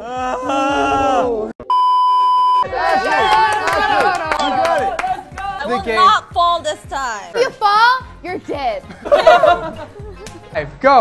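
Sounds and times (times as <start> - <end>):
people shouting and cheering: 0.0 - 1.6, 2.6 - 6.7
high test-pattern beep: 1.7 - 2.6.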